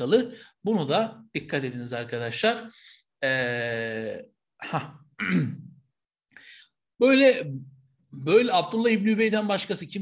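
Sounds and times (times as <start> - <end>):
man clearing his throat: 4.6 - 5.8.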